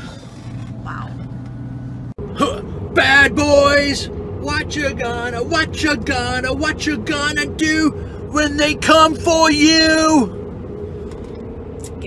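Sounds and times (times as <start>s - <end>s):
road noise: 0.0s - 12.0s
van engine drone: 0.0s - 12.0s.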